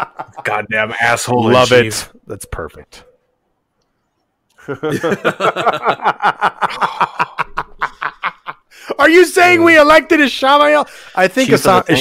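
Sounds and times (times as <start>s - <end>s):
men chuckling: 4.6s - 8.7s.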